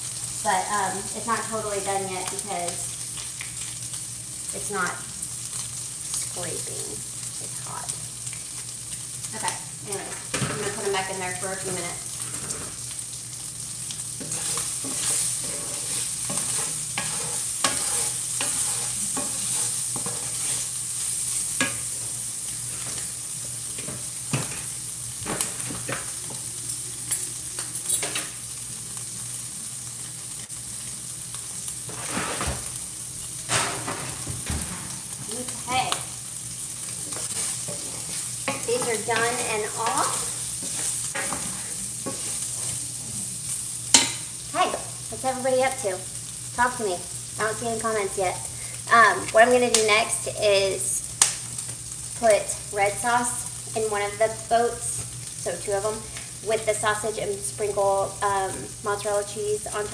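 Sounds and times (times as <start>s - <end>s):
sausage sizzling in a skillet: 0.0s - 59.9s
spatula scraping a pan: 14.2s - 23.1s, 31.9s - 32.6s, 36.9s - 43.0s.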